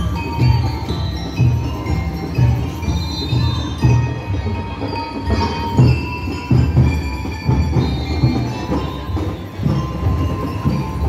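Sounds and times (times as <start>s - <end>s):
bell-like notes ringing: 0.0s - 11.0s
marching band drums beating: 0.0s - 11.0s.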